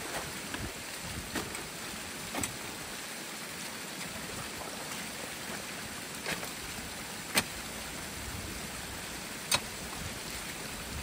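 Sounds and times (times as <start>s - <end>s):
water rushing: 0.0s - 11.0s.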